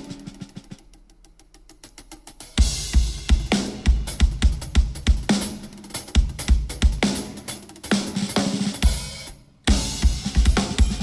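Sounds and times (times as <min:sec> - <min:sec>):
drum kit: 0:00.0 - 0:11.0
live rock band: 0:02.6 - 0:11.0.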